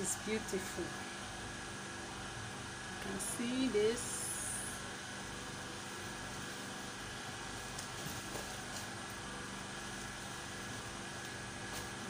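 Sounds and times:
mechanical hum with whine: 0.0s - 12.0s.

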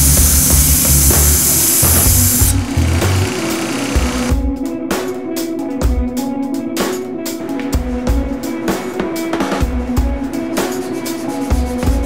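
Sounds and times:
belt grinder sanding wood: 0.0s - 4.3s
background music with bass line: 0.0s - 12.0s.

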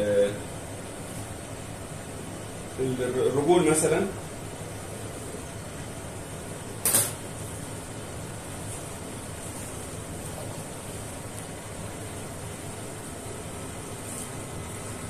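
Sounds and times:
room hum: 0.0s - 15.0s.

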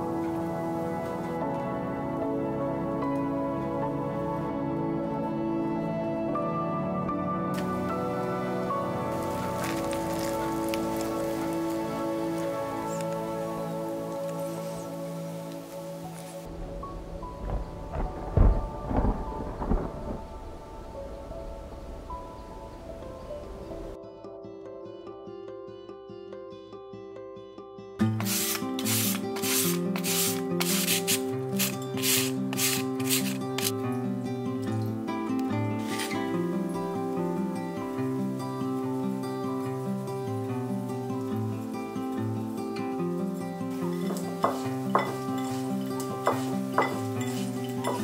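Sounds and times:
background music: 0.0s - 48.0s
carrot rasping on a hand grater: 28.2s - 33.7s.

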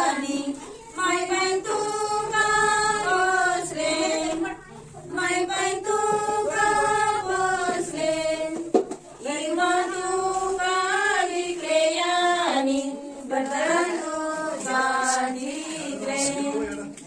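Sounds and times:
women singing: 0.0s - 17.0s.

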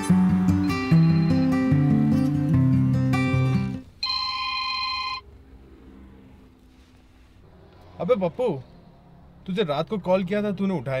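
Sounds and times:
mobile phone ringing: 0.5s - 2.4s, 3.4s - 5.3s.

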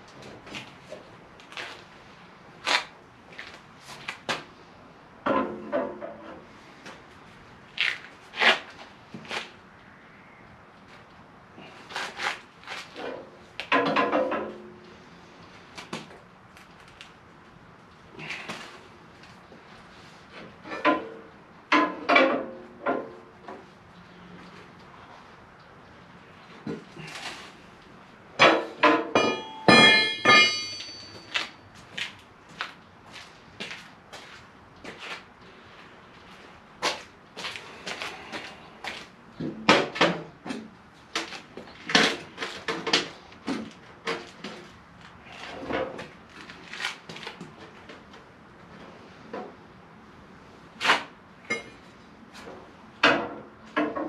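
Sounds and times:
hammer striking metal plate: 28.4s - 31.4s.

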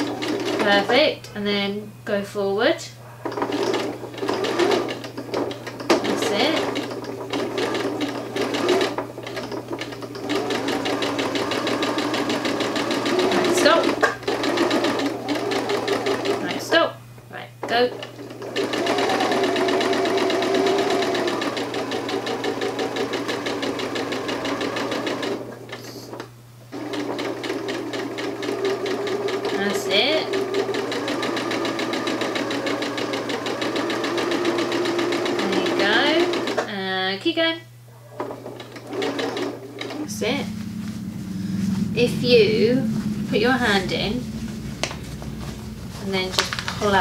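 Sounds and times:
sewing machine stitching: 0.0s - 0.9s, 3.2s - 16.6s, 17.8s - 25.8s, 26.7s - 36.7s, 38.0s - 40.1s.

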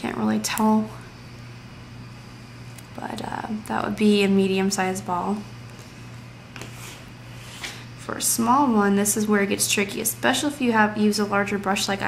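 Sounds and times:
low background hum with hiss: 0.0s - 12.0s.

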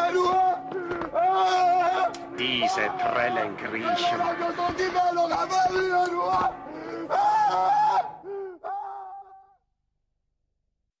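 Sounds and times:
man giving wordless vocal cries: 0.0s - 9.6s.

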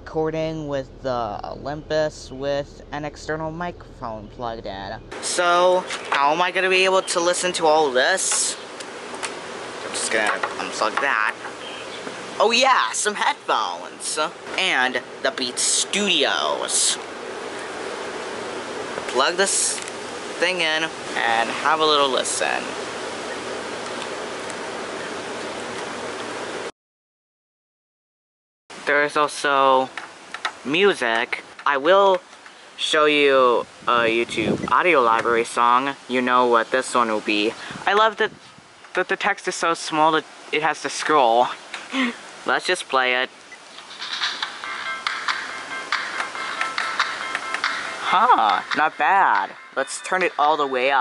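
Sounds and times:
steady background hiss: 0.0s - 26.7s, 28.7s - 51.0s
music through small speaker: 44.2s - 50.2s.

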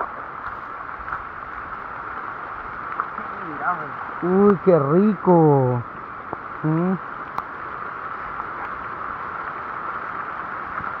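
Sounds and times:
heavy rain on leaves: 0.0s - 11.0s
river rushing: 0.0s - 11.0s.

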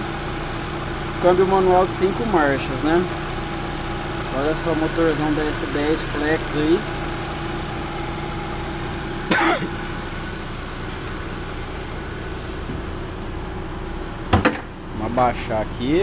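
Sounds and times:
car engine idling: 0.0s - 16.0s
car hood slamming shut: 14.3s - 14.8s.

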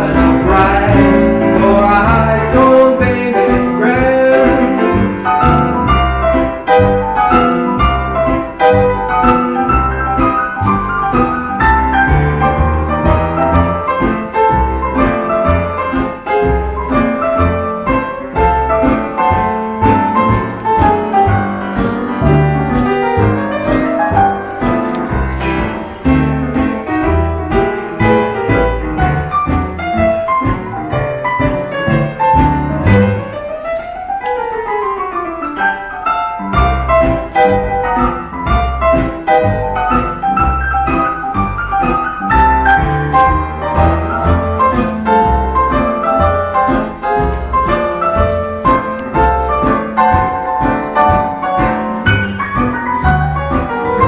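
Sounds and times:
solo piano playing: 0.0s - 54.0s.

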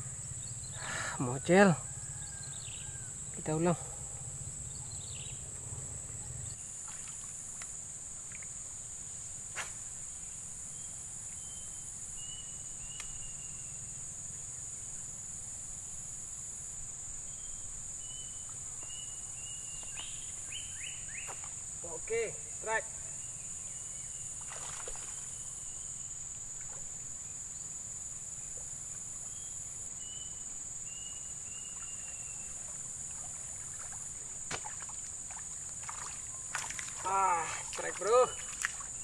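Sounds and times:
insects droning chorus: 0.0s - 39.0s.

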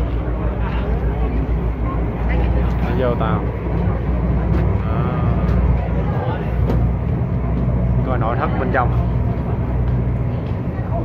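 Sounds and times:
ferry engine low rumble: 0.0s - 11.0s.

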